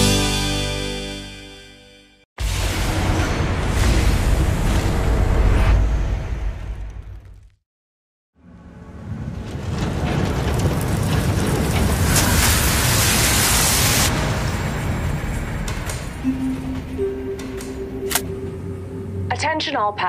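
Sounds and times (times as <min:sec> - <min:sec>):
deep rumble: 0:09.0 - 0:20.0
steady low tones: 0:16.1 - 0:20.0
sharp click: 0:17.6 - 0:18.4.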